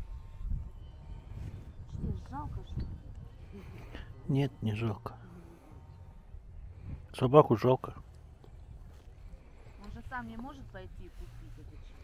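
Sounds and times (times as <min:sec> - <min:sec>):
steady low rumble: 0:00.0 - 0:12.0
man speaking: 0:04.2 - 0:05.2, 0:07.2 - 0:08.0.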